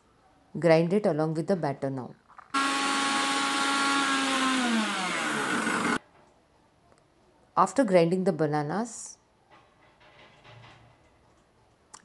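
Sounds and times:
mixer grinder whining: 0:02.6 - 0:06.0.

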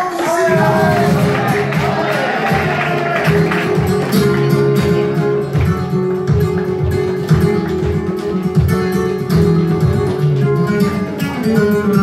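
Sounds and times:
flamenco guitar plucked notes: 0:00.0 - 0:12.0.

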